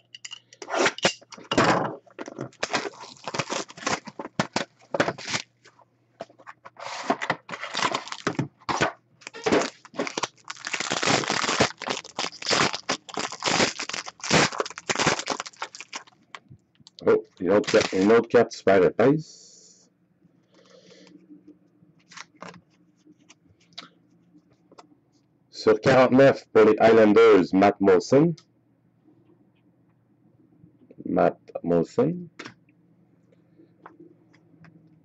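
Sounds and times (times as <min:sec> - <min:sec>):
plastic wrapping crinkling and tearing: 0:02.5 - 0:05.5, 0:07.5 - 0:16.4, 0:17.5 - 0:18.1
person speaking: 0:16.9 - 0:19.8.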